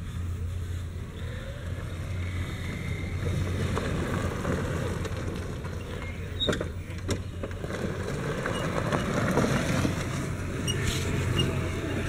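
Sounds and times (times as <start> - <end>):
electric golf cart driving on grass: 0.0 - 12.0.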